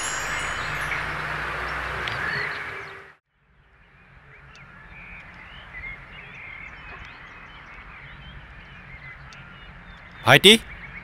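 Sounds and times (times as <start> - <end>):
shimmering chime-like sound effect: 0.0 - 1.9.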